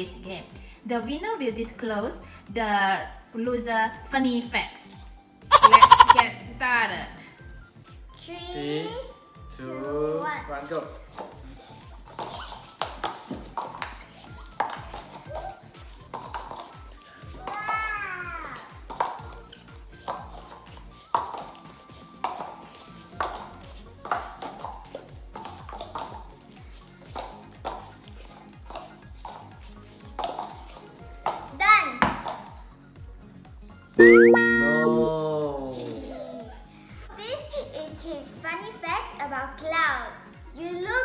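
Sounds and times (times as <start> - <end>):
background music with steady beat: 0.0 - 41.0
paper cups tapping and scuffing: 11.0 - 32.6
short voice: 34.0 - 35.7.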